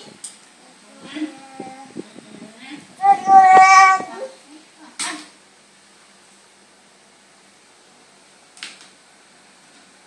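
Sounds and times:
toddler squealing high note: 3.0s - 4.3s.

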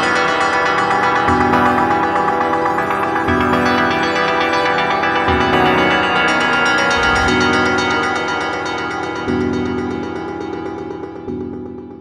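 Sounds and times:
sustained synth pad: 2.8s - 8.1s
low bass note: 6.9s - 7.8s.

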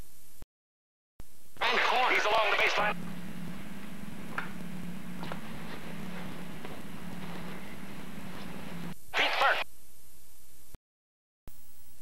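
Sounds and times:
steady low hum: 1.2s - 10.8s.

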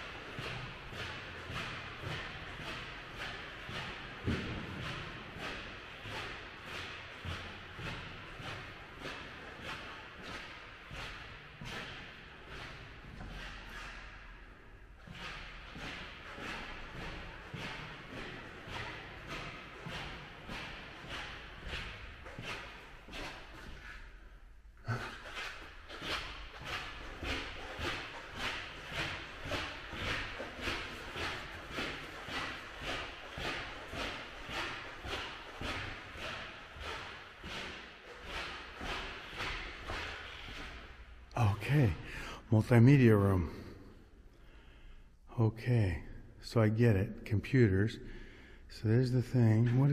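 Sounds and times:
squeaky footsteps on hard floor: 0.0s - 42.7s.

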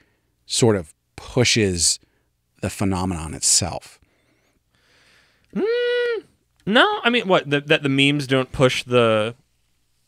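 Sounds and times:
faint breath: 0.0s - 0.4s, 4.0s - 5.5s
high-pitched voiced call: 5.5s - 6.3s.

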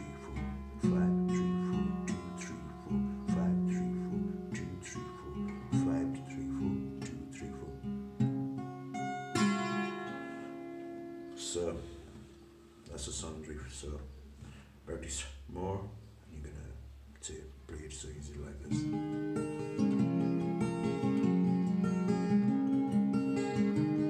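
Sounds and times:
strummed guitar chord: 0.0s - 12.3s
acoustic guitar picking: 0.0s - 14.5s, 18.5s - 24.0s.

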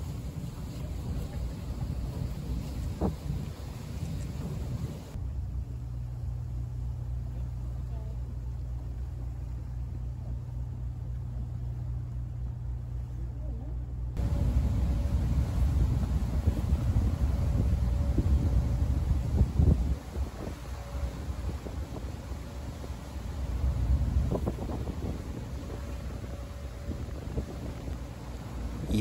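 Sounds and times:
boat engine droning: 0.0s - 29.0s.

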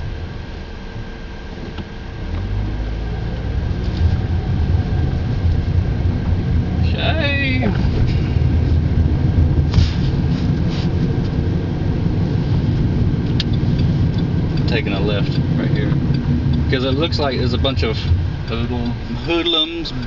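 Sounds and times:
car engine rumble: 0.0s - 20.0s
tyres on road: 0.0s - 20.0s.

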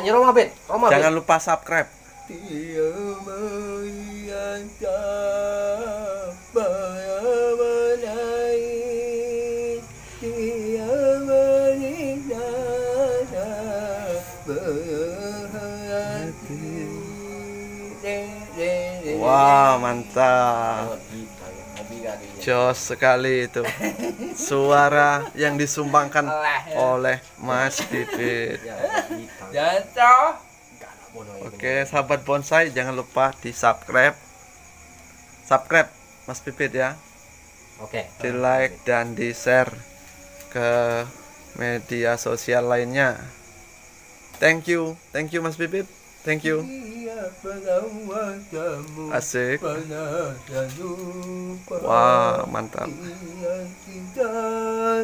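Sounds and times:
man singing long wavering notes: 2.2s - 28.6s, 46.3s - 55.0s.

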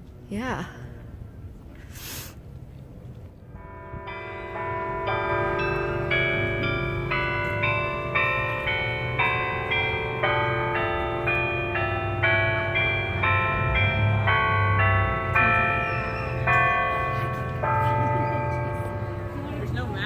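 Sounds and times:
church bells chiming a tune: 3.5s - 20.0s.

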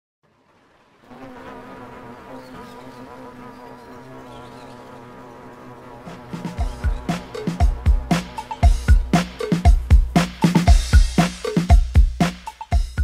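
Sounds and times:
honeybees buzzing: 1.0s - 11.8s.

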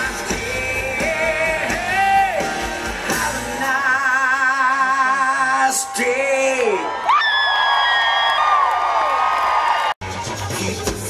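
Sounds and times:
live rock band playing: 0.0s - 5.6s, 10.0s - 11.0s
crowd cheering and whooping: 5.0s - 10.8s.

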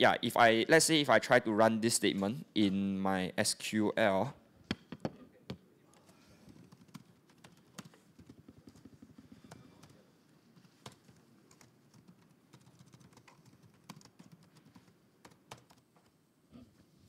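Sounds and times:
typing on computer keyboard: 6.5s - 10.0s, 10.6s - 15.9s.

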